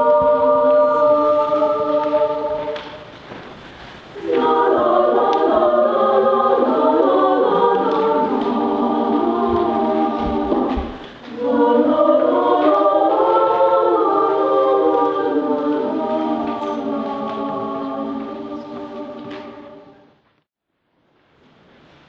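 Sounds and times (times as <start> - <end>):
choir singing sustained chords: 0.0 - 3.1, 4.2 - 20.2.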